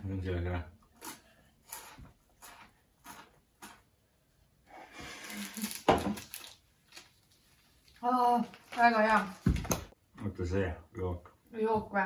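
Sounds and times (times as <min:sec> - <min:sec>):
snack crunching: 0:00.9 - 0:04.0.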